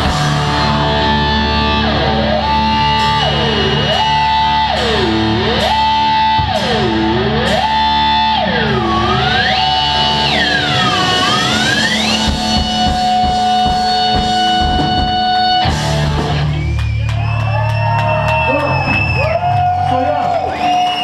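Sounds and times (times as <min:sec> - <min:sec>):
distorted guitar pitch sweeps: 0:00.0 - 0:17.6
heavy rock band playing: 0:00.0 - 0:20.1.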